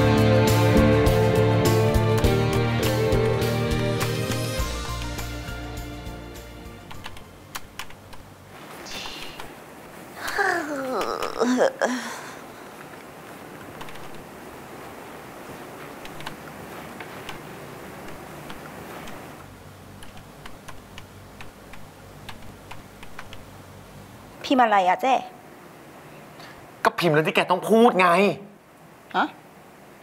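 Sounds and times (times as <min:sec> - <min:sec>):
background music: 0:00.0 - 0:07.6
laptop keyboard typing: 0:06.9 - 0:08.3, 0:13.6 - 0:14.3, 0:15.9 - 0:19.4, 0:20.0 - 0:23.5.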